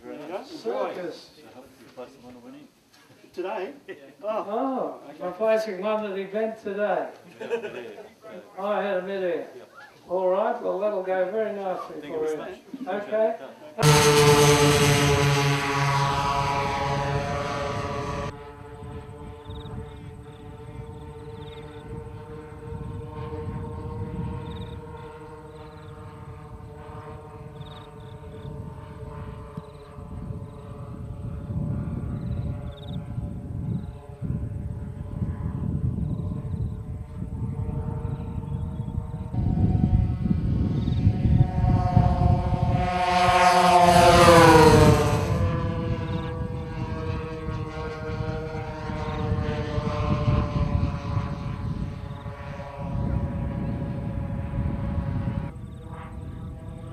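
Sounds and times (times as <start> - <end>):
model plane propellers droning: 13.8 - 56.9.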